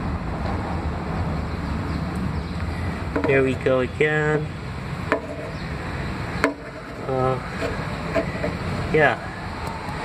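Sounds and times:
sharp taps: 0:06.4 - 0:06.8.

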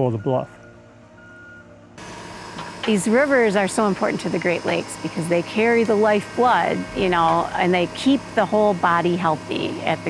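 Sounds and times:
excavator warning beeps: 0:00.0 - 0:01.8
engine drone: 0:00.7 - 0:10.0.

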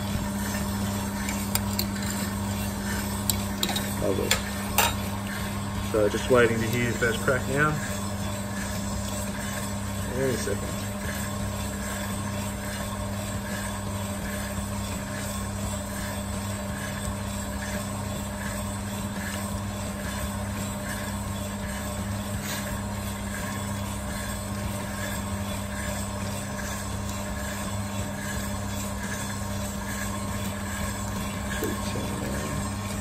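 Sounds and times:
coffee roaster motor and fan hum: 0:00.0 - 0:33.0.

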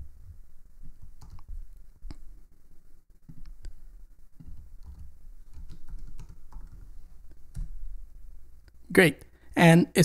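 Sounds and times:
faint low hum: 0:00.0 - 0:10.0
keyboard keys clicking: 0:00.9 - 0:01.5, 0:04.4 - 0:07.8.

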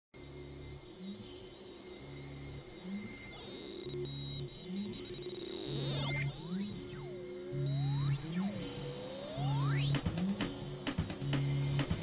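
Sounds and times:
steady high synth tone: 0:00.2 - 0:10.0.

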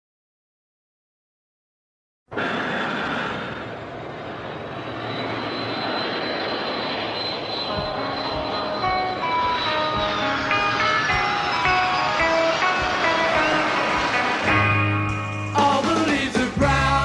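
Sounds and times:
jet engines roaring and whining: 0:02.3 - 0:16.6
guitar notes: 0:07.7 - 0:15.7.

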